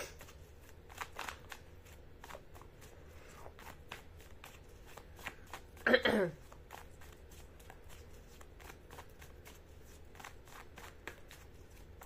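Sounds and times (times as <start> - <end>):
cards shuffling: 0.0 - 5.8, 6.4 - 12.0.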